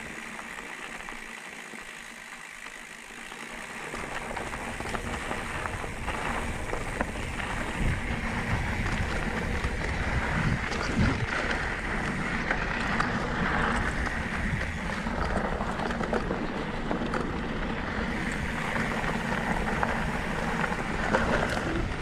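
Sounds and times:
bike clicks and rattles: 0.0s - 22.0s
tyres rolling on dirt: 0.0s - 22.0s
wind rush on microphone: 4.4s - 17.1s, 17.8s - 22.0s.

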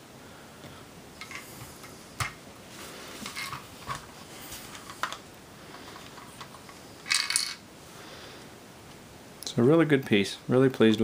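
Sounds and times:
faint room hiss: 0.0s - 11.0s
plastic bricks clicking together: 5.8s - 7.6s.

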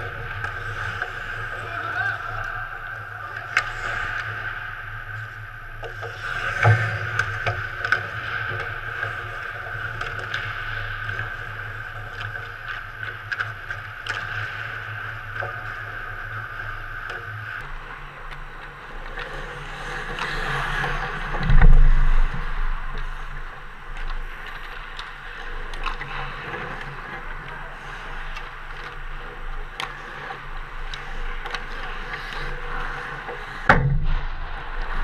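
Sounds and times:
skate blades scraping ice: 18.4s - 23.4s
sticks and puck clicking: 24.0s - 33.8s.

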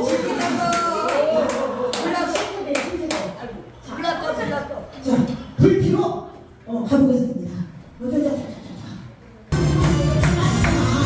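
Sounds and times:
hands clapping rhythmically: 0.0s - 3.4s, 9.6s - 11.0s.

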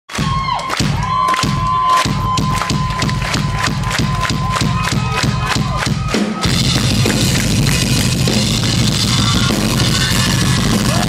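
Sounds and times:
crowd cheering: 0.1s - 11.0s
fast drum beat: 0.1s - 11.0s.

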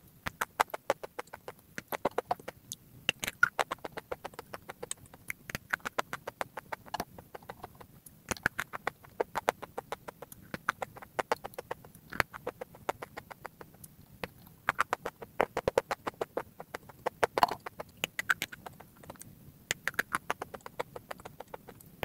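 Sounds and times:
crunchy chewing: 0.2s - 21.9s.

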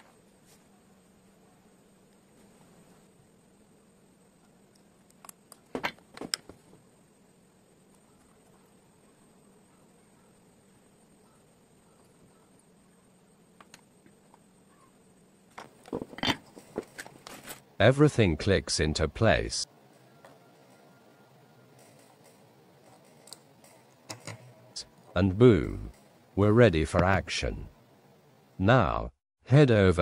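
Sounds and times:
faint steady hum: 0.0s - 30.0s
tools and parts clicking and tapping: 15.5s - 17.6s, 21.7s - 24.6s.

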